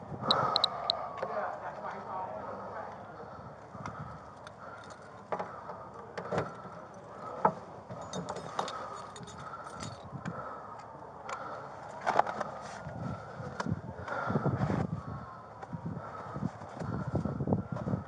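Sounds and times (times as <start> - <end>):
gear rustling and jingling: 4.4 - 5.3, 6.5 - 10.1.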